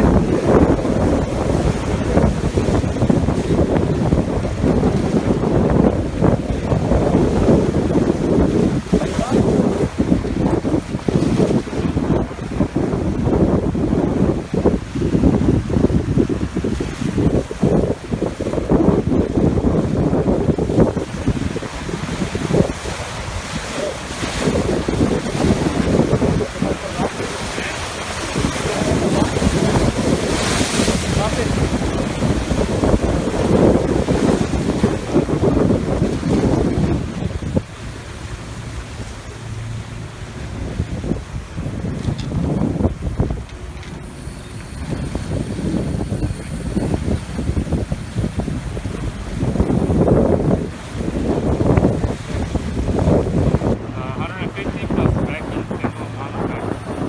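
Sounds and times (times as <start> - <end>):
wind buffeting microphone: 0.0 - 57.0
surf breaking on boulders: 18.6 - 37.8.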